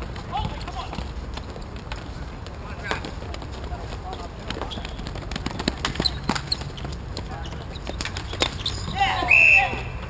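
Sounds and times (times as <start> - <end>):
sticks and ball clacking on floor: 0.0 - 10.0
distant players shouting: 5.6 - 10.0.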